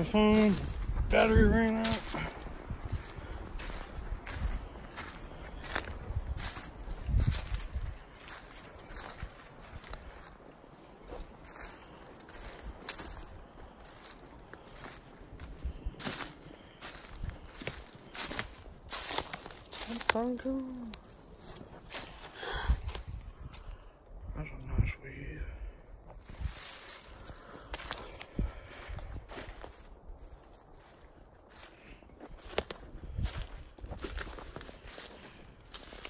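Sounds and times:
footsteps crunching dry leaves: 0.0 - 23.4, 26.1 - 36.0.

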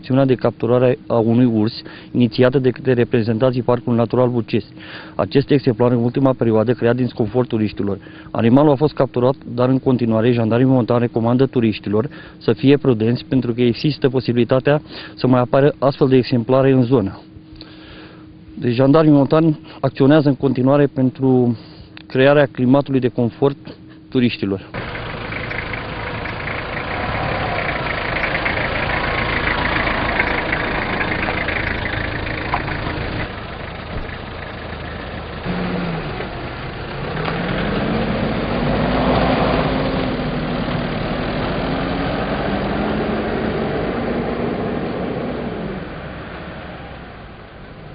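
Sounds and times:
vehicle engines running: 24.7 - 47.9
engine accelerating: 24.8 - 47.9.

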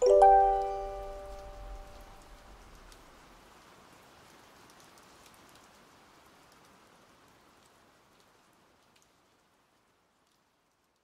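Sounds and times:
ambient music: 0.0 - 2.5
faint rain hiss: 0.0 - 11.0.

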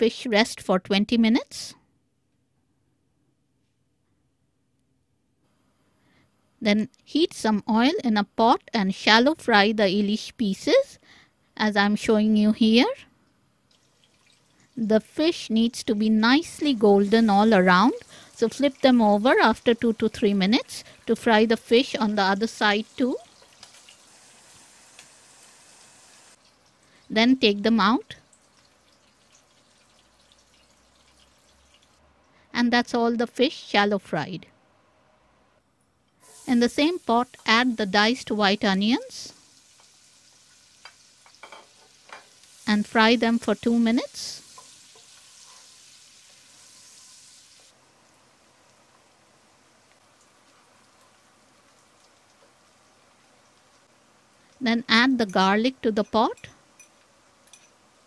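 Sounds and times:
fish sizzling in oil: 13.7 - 32.0, 36.2 - 58.0.

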